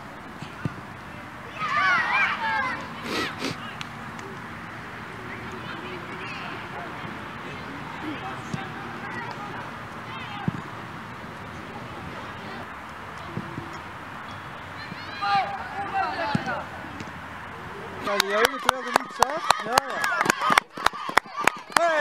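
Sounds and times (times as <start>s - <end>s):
players and spectators shouting: 0.4s - 22.0s.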